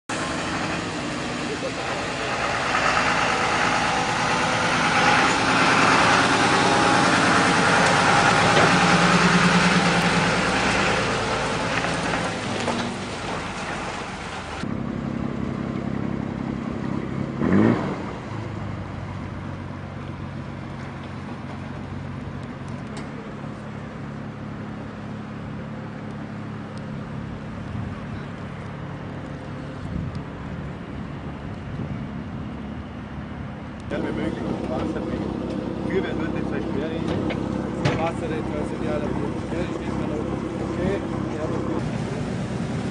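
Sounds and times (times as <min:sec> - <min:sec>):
diesel truck engine running: 0:00.1 - 0:42.9.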